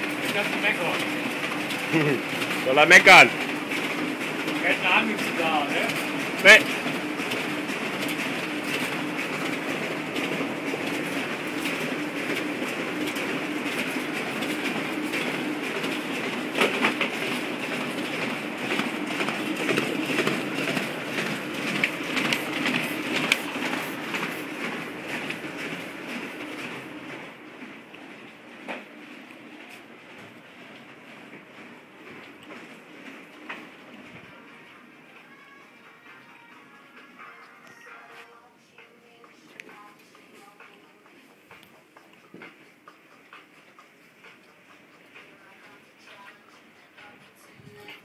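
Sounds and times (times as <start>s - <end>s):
printer whirring and clicking: 0.0s - 37.9s, 38.7s - 48.0s.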